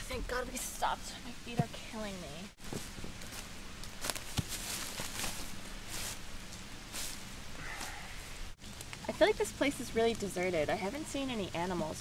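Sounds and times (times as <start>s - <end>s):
outdoor hiss: 0.0s - 12.0s
dry leaves rustling and crackling: 2.6s - 8.0s.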